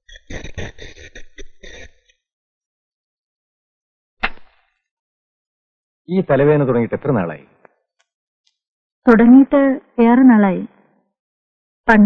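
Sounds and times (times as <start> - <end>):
person clearing throat: 0.1 - 2.0.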